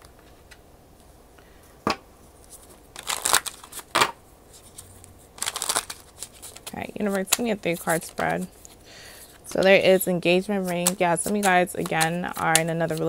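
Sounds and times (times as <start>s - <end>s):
cards rustling: 2.4s - 13.0s
cards shuffling: 2.4s - 13.0s.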